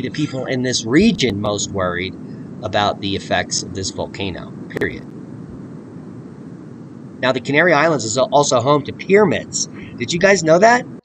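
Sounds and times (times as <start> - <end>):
volcano roaring: 0.0 - 10.6.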